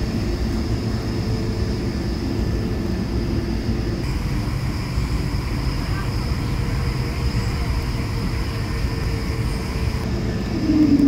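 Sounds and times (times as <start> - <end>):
jet engine high whine: 0.0 - 11.0
low cabin rumble: 0.0 - 11.0.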